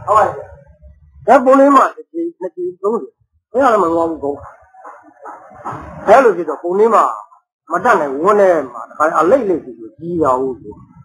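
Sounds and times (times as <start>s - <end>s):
man preaching: 0.0s - 0.6s, 1.2s - 4.5s, 6.0s - 10.8s.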